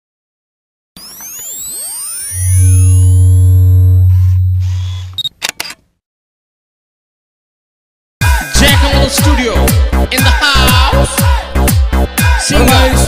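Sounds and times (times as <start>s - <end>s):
higher steady tones: 1.0s - 5.2s
synthesized sweeps: 1.0s - 5.2s
deep steady bass tone: 2.4s - 5.2s
quick sharp clicks: 4.8s - 5.8s.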